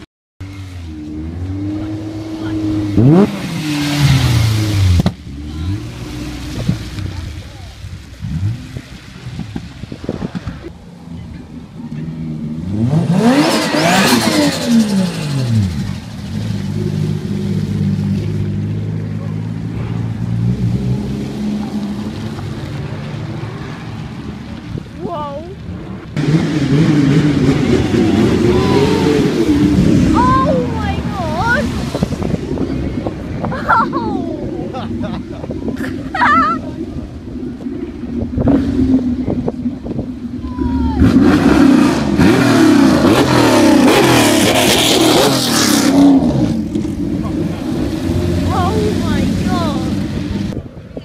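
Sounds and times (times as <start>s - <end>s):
car engine revving hard: 0.4s - 7.2s, 12.5s - 18.1s, 26.2s - 33.1s, 40.9s - 50.6s
sports cars driving past: 0.4s - 51.0s.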